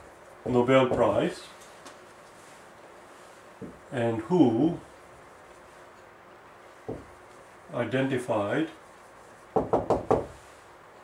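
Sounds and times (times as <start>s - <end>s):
marker knocking on whiteboard: 6.9s - 7.2s, 9.6s - 10.4s.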